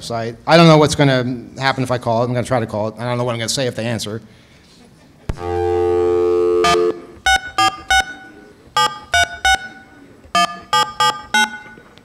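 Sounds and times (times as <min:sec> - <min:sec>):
telephone keypad tones: 0:06.6 - 0:12.0.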